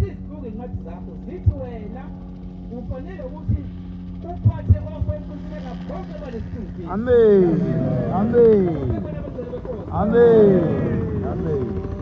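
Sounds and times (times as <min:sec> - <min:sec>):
low hum: 0:00.1 - 0:12.0
person preaching: 0:02.8 - 0:12.0
congregation saying amen: 0:06.9 - 0:12.0.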